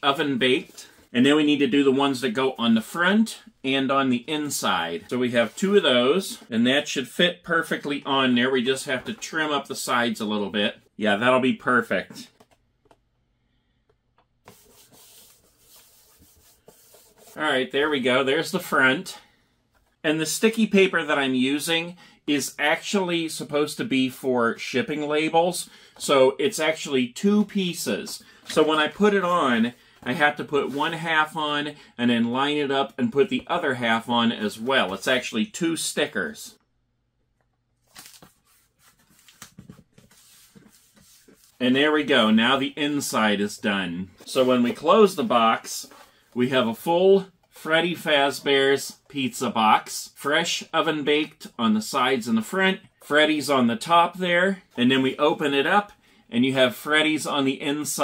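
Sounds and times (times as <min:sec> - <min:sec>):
hands rubbing decal on cardboard: 0:14.4 - 0:17.4, 0:38.4 - 0:41.6
sticker paper rustling and tapping: 0:37.9 - 0:41.4.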